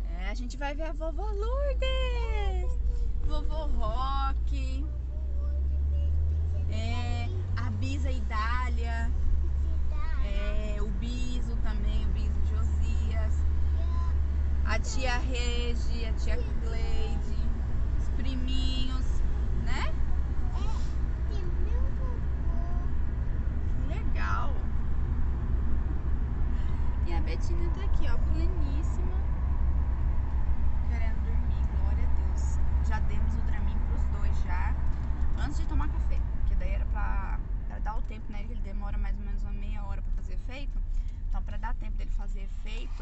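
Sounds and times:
people talking: 0.0 - 22.9, 23.7 - 24.6, 27.0 - 29.2, 30.9 - 34.8, 35.4 - 40.8, 41.4 - 43.0
car cabin road rumble: 0.0 - 43.0.

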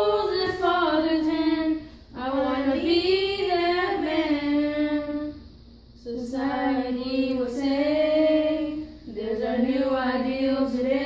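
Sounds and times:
boys singing: 0.0 - 5.3, 6.1 - 11.0.

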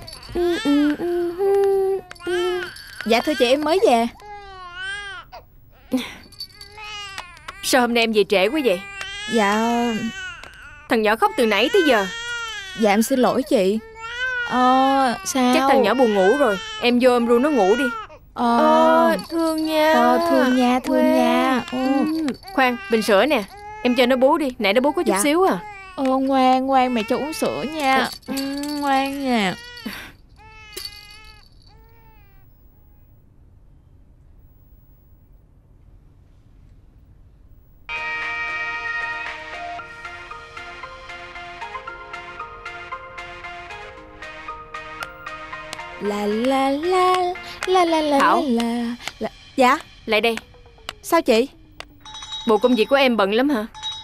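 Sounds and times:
infant crying: 0.0 - 32.5.

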